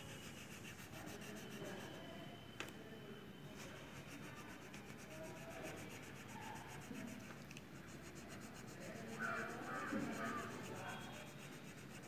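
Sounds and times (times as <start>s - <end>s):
crayon rubbing on paper: 0.0s - 2.0s, 3.6s - 12.0s.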